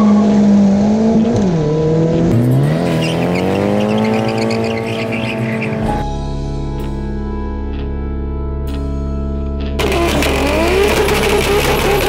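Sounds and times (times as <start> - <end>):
car engine revving: 0.0 - 6.0, 9.8 - 12.0
background music: 4.0 - 12.0
tyres spinning: 9.8 - 12.0.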